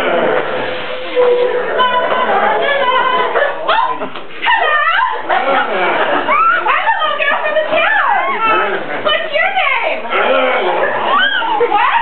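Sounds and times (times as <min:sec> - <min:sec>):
voices on stage: 0:00.0 - 0:12.0.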